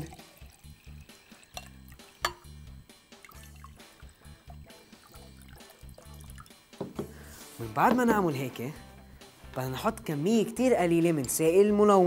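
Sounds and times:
water poured into a glass: 0.0s - 6.7s
background music with steady beat: 0.0s - 12.0s.

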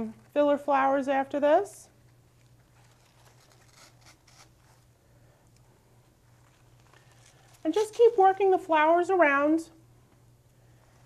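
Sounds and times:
low steady hum: 0.0s - 11.0s
rustling of flower stems: 6.3s - 8.4s.

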